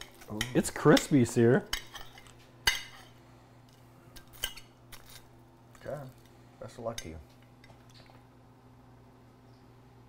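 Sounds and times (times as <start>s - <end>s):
fork clinking and scraping on plate: 0.0s - 3.2s, 4.2s - 5.9s.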